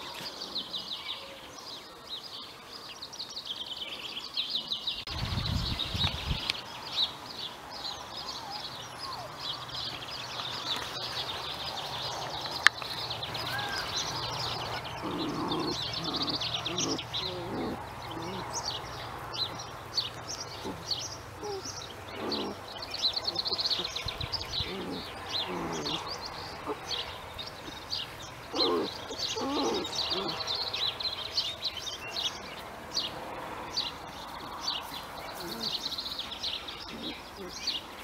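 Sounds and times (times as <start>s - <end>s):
birds chirping and singing: 0.0s - 38.0s.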